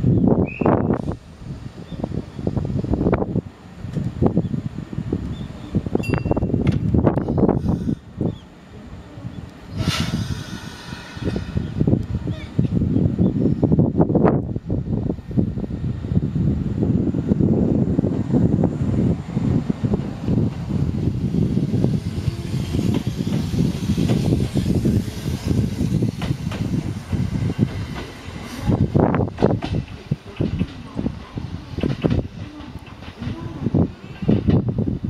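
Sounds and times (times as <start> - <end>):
electric train passing: 0.0 - 35.0
train wheels knocking on rails: 21.3 - 33.5.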